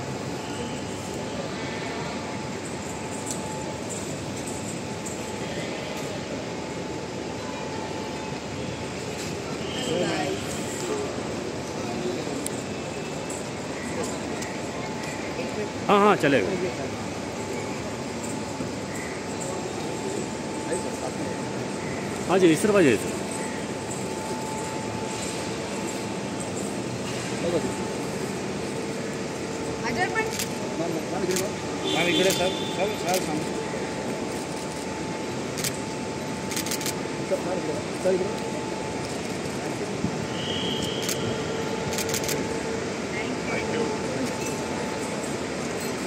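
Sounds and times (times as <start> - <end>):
steady background hum: 0.0 - 46.0.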